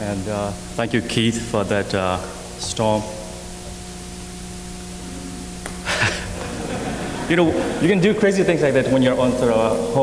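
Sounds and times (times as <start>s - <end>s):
even hiss: 0.0s - 10.0s
steady hum of held tones: 0.0s - 10.0s.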